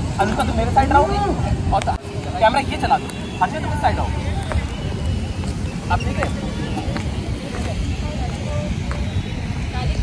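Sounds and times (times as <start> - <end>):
group talking: 0.0 - 10.0
wind on microphone: 0.0 - 10.0.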